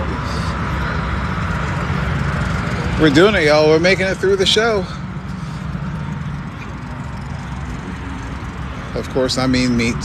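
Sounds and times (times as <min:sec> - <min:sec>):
car engine idling: 0:00.0 - 0:10.0
outdoor background noise: 0:00.0 - 0:10.0.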